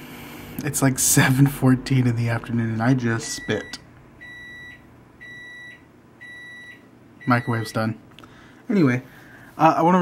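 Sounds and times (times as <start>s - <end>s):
microwave high-pitched beeps: 3.2s - 7.8s.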